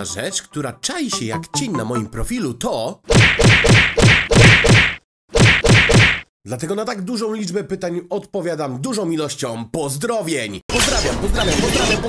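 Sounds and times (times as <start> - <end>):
punchy whack sound effects: 3.1 - 6.3.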